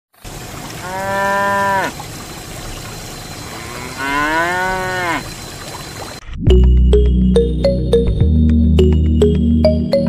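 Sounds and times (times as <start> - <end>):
cow mooing: 0.8 - 2.0, 3.5 - 5.3.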